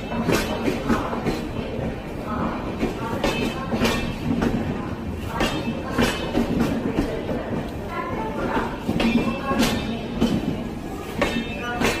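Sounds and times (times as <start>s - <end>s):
train coaches rumbling past: 0.0s - 12.0s.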